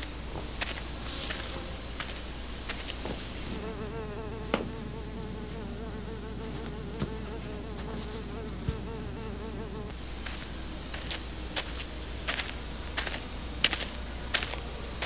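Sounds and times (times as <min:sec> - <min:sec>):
insect buzzing: 0:00.0 - 0:15.0
steady hiss: 0:00.0 - 0:15.0.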